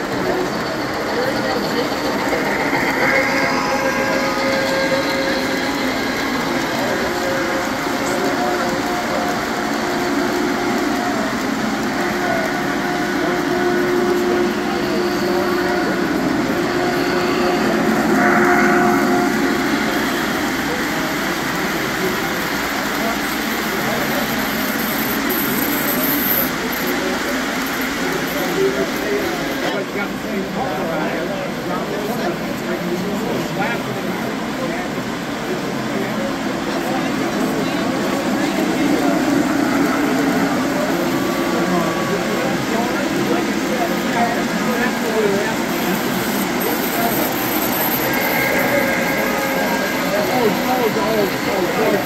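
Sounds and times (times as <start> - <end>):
model train wheels rumbling: 0.0 - 52.0
locomotive whistle tones: 0.2 - 27.1, 36.2 - 52.0.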